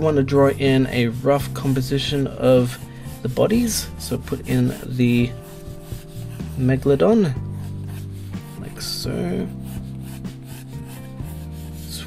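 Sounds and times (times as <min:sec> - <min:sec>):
soft background music: 0:00.0 - 0:12.0
pencil drawing on paper: 0:00.1 - 0:12.0.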